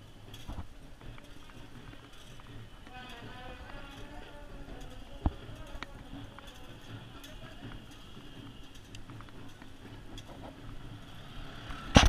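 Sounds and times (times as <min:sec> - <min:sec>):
faint ticks and rattles: 0:00.0 - 0:11.8
vehicle ride rumble: 0:00.0 - 0:12.0.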